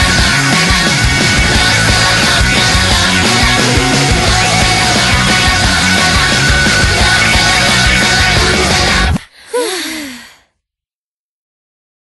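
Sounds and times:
vocal sigh gliding down: 9.3 - 10.4.

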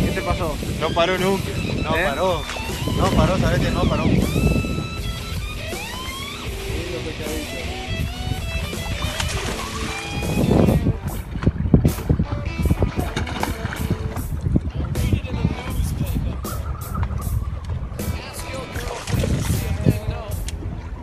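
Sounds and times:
background music: 0.0 - 21.0
fish thrashing and splashing: 1.5 - 3.6, 8.1 - 14.9, 16.3 - 21.0.

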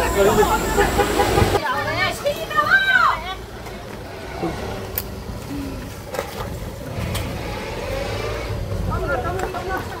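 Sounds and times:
people talking: 0.0 - 3.4, 8.8 - 10.0.

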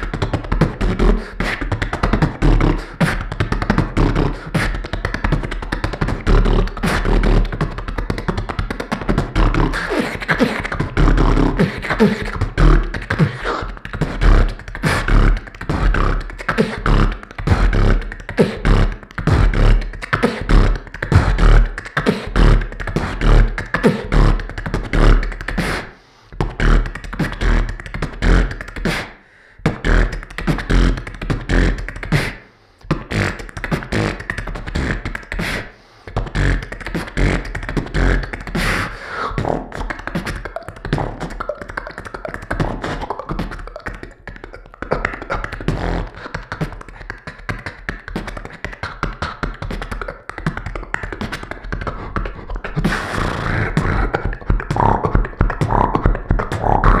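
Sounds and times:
beatboxing into a microphone: 0.0 - 57.0.

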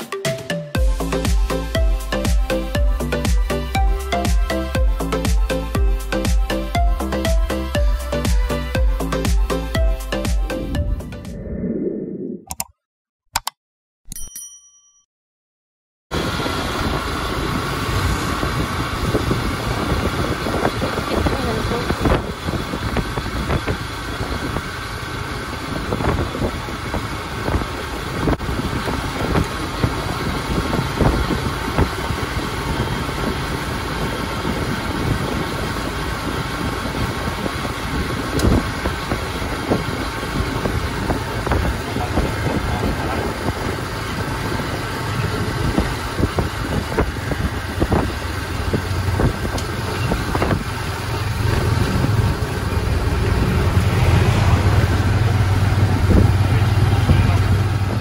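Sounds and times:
road noise: 0.8 - 12.4, 16.1 - 58.0
motorcycle engine running: 16.2 - 58.0.

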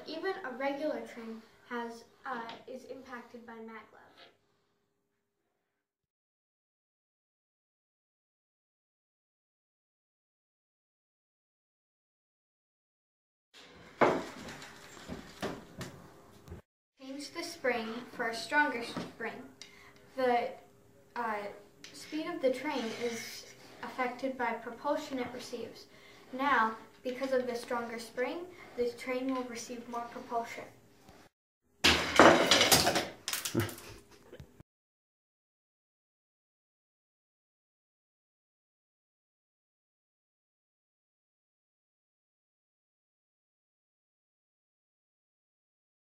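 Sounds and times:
objects knocking on a tabletop: 14.0 - 16.0.

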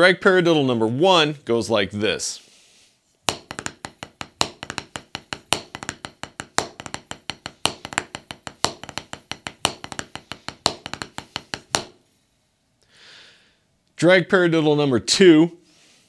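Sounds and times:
drumsticks tapping practice pad: 3.3 - 12.0.

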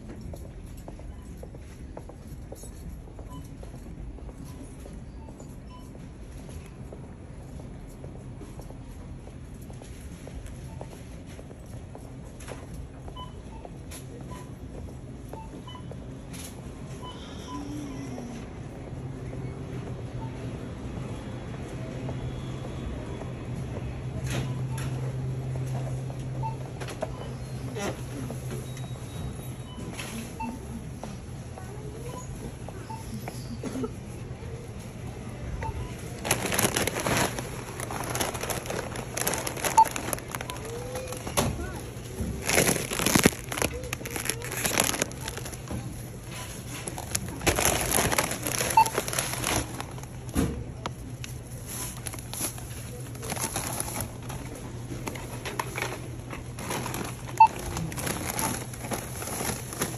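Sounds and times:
low store hum: 0.0 - 59.9
plastic bag crinkling: 36.1 - 45.9, 46.8 - 50.2, 51.9 - 54.2, 56.6 - 59.9
scanner beep: 39.5 - 41.3, 48.2 - 49.2
short beeps: 48.6 - 49.1.

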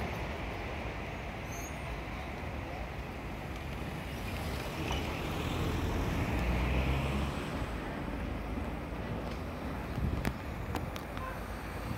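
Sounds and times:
car engines rumbling: 0.0 - 11.9.

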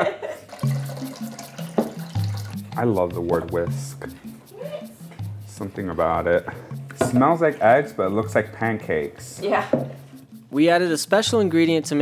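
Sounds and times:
water pouring into jug: 0.5 - 2.8.

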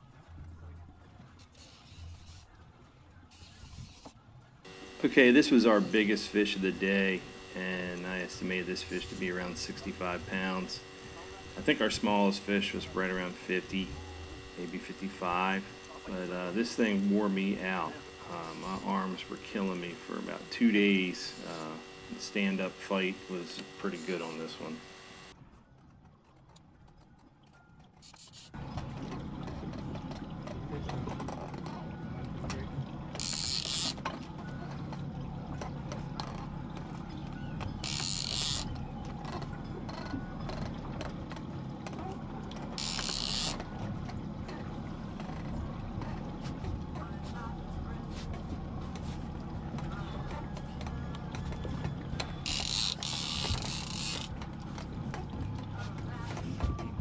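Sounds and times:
outboard engines idling: 0.0 - 25.4, 28.0 - 57.0
fishing reel buzzing: 1.4 - 2.6, 3.3 - 25.4, 28.0 - 28.6, 33.1 - 34.3, 37.6 - 41.2, 42.8 - 43.8, 52.3 - 54.8.

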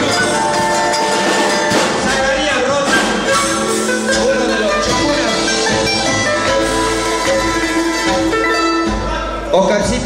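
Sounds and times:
panpipes playing: 0.0 - 9.5
guitar: 0.0 - 10.0
man talking: 2.0 - 3.2, 9.0 - 10.0.

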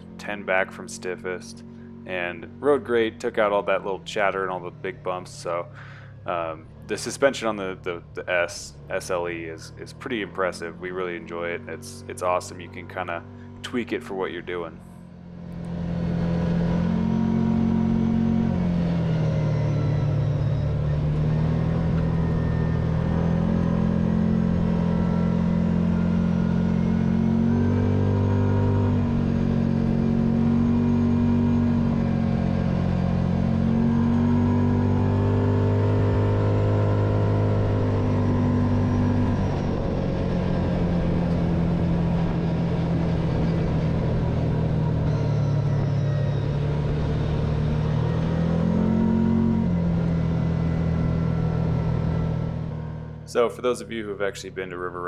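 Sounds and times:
engine running under load: 0.0 - 55.0.

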